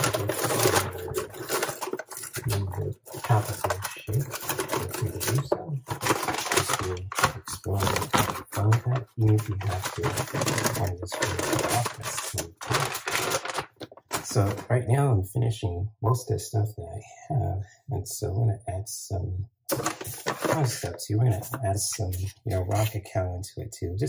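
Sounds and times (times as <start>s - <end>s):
person talking indistinctly: 0.0s - 13.4s, 14.1s - 24.0s
plastic bag rustling: 0.0s - 14.6s, 19.7s - 20.9s.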